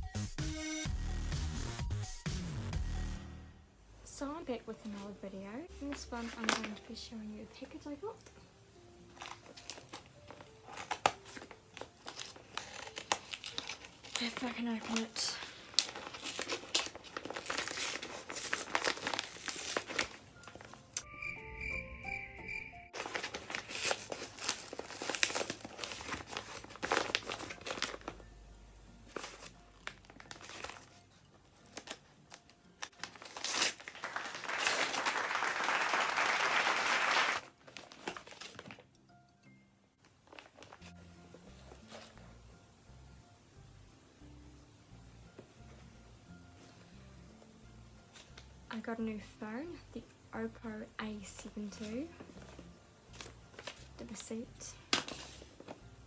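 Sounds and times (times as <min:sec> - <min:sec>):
background music: 0:00.0 - 0:56.0
paper package crinkling: 0:05.7 - 0:07.0, 0:09.0 - 0:21.0, 0:22.9 - 0:28.4, 0:29.0 - 0:38.9, 0:40.0 - 0:42.2, 0:51.4 - 0:54.2, 0:54.8 - 0:55.9
paper ripping: 0:05.9 - 0:06.8, 0:09.1 - 0:21.0, 0:23.0 - 0:28.2, 0:29.1 - 0:38.8.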